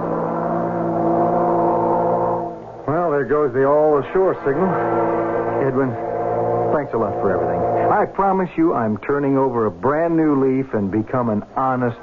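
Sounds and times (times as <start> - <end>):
ship's horn blast: 0.0 - 2.6, 4.2 - 8.3.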